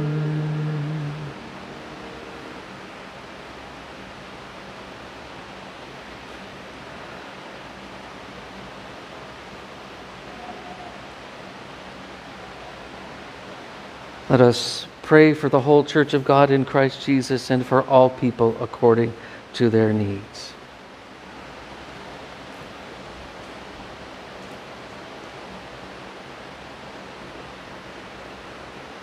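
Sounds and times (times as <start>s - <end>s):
held music chord: 0.0s - 3.5s
room hiss: 0.0s - 29.0s.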